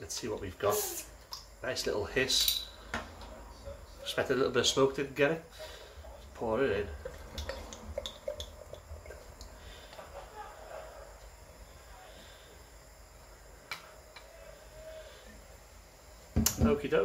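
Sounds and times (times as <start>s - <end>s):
beer pouring into glass: 5.4s - 10.0s.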